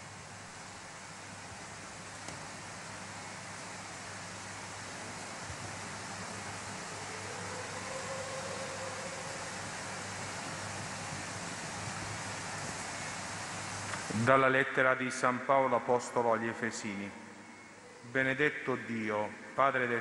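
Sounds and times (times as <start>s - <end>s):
faint low hum: 0.0s - 20.0s
steady hiss: 0.0s - 20.0s.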